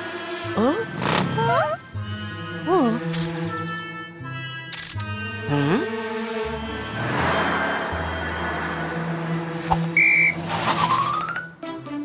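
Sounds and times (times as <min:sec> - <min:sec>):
cartoon cars whooshing past: 0:06.7 - 0:11.6
police whistle blast: 0:09.9 - 0:10.4
rising whistle glide: 0:09.9 - 0:11.4
children's background music: 0:10.7 - 0:12.0.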